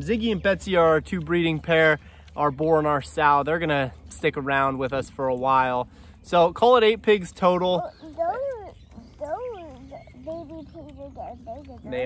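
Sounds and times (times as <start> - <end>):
small child calling: 7.8 - 12.0.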